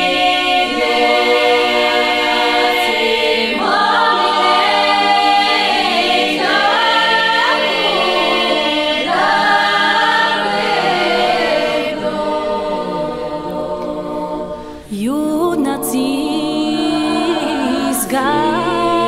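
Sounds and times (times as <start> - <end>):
women's choir singing a cappella: 0.0 - 19.0
solo female voice singing: 14.9 - 19.0.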